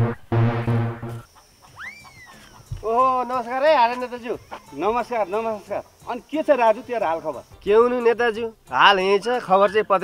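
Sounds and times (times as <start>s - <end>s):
short low thump: 0.0s - 1.3s
background music: 0.0s - 10.0s
high whistle-like call: 1.1s - 2.6s.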